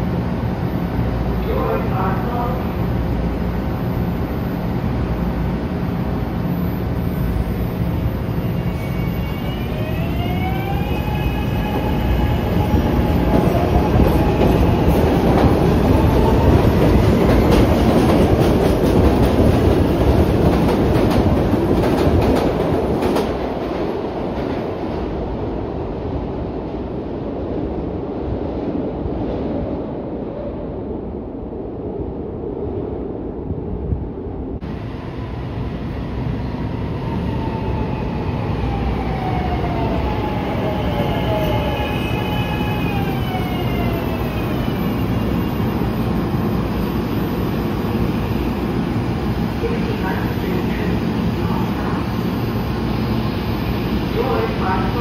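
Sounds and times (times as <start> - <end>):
train wheels rumbling on rail: 7.0 - 30.6.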